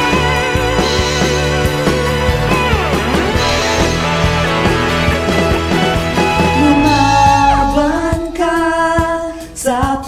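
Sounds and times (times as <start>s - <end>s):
band accompaniment: 0.0s - 10.0s
person singing long note: 6.4s - 9.0s.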